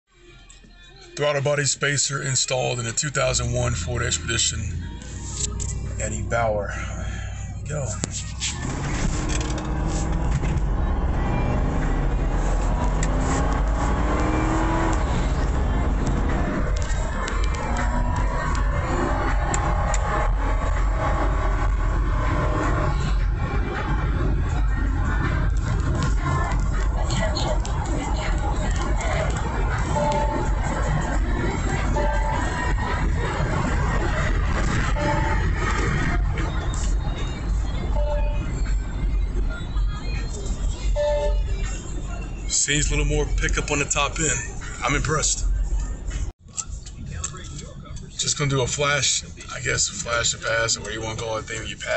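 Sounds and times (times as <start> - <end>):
car engine accelerating: 2.8 - 46.3.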